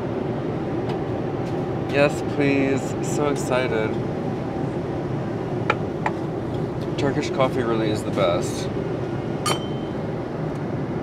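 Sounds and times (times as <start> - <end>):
airplane cabin drone: 0.0 - 11.0
tableware clinking: 9.4 - 10.0.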